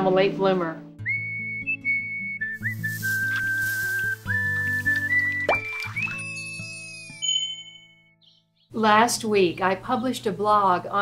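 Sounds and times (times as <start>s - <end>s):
low musical accompaniment: 0.0s - 6.8s
whistled melody: 1.0s - 8.4s.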